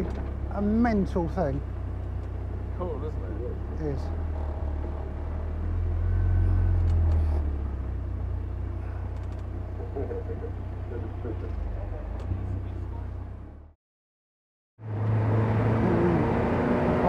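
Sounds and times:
car engine at low revs: 0.0s - 13.8s, 14.8s - 17.0s.

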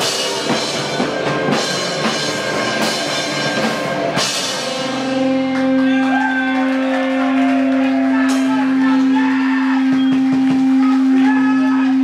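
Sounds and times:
electric guitar drone: 0.0s - 12.0s.

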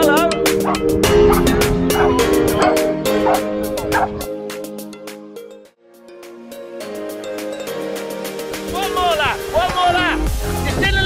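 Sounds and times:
music with sustained chords: 0.0s - 10.8s
dog barking: 0.6s - 4.2s.

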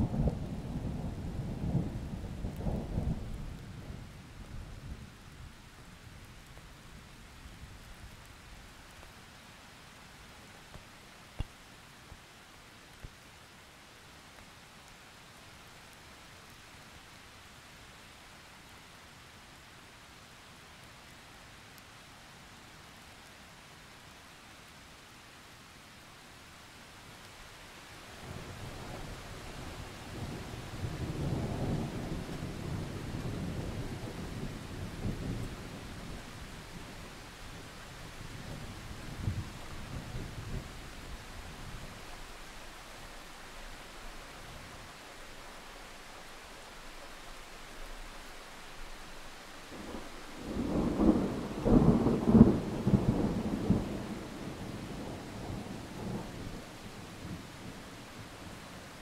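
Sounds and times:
heavy rain: 0.0s - 59.0s
thunder rumbling: 49.7s - 57.4s.

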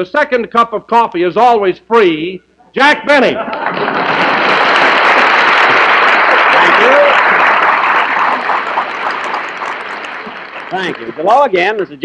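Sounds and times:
studio audience applauding: 3.4s - 11.9s.

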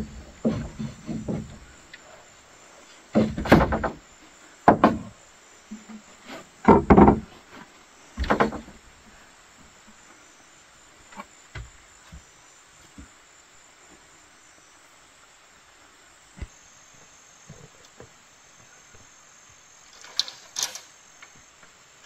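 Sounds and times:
knocks of bamboo being handled: 0.0s - 1.7s, 3.1s - 4.0s, 4.6s - 8.8s
insects droning: 0.0s - 22.0s.

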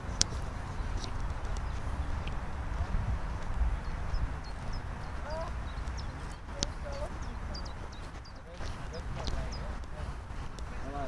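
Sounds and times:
low rumble on microphone: 0.0s - 11.0s
small birds chirping: 0.0s - 11.0s.

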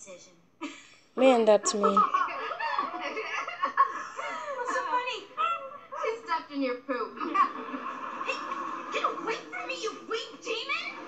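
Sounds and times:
studio audience laughter: 1.8s - 5.2s, 7.2s - 11.0s.

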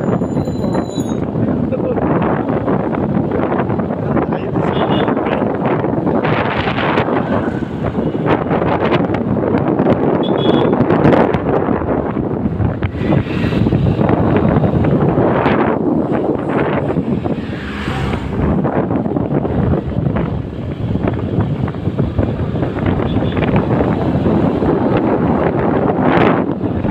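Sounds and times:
road noise: 0.0s - 26.9s
wind buffeting microphone: 0.0s - 26.9s.

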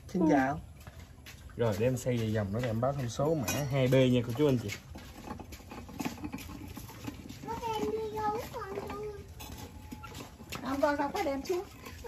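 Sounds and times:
ceramic pot clicking and scraping: 2.7s - 12.0s.

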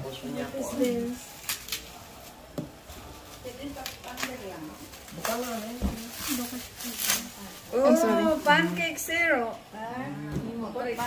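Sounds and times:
tissue paper crinkling: 0.7s - 9.4s.

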